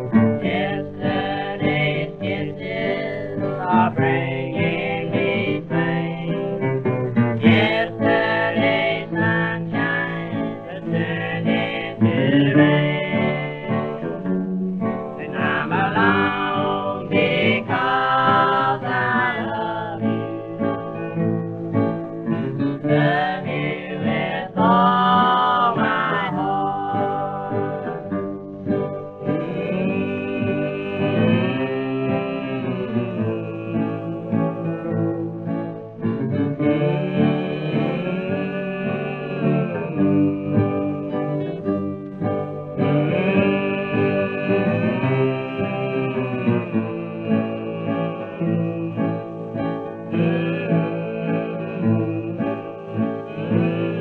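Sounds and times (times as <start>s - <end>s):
acoustic guitars strumming: 0.0s - 54.0s
person singing: 0.0s - 54.0s.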